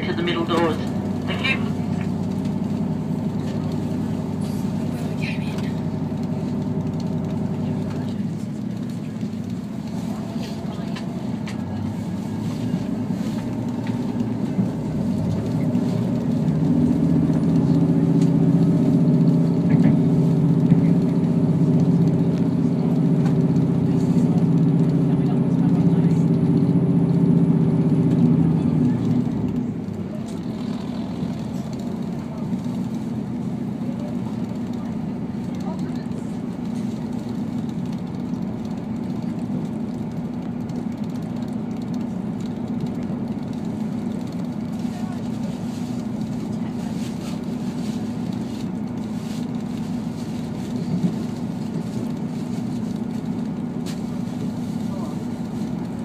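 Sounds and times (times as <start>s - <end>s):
diesel railcar engine drone: 0.0s - 56.0s
train rumbling on track: 0.0s - 56.0s.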